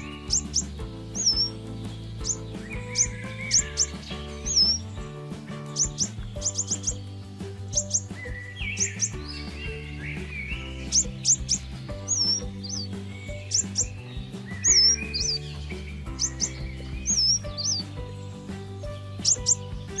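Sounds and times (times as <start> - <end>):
background music with low notes: 0.0 - 20.0
small birds chirping: 0.0 - 20.0.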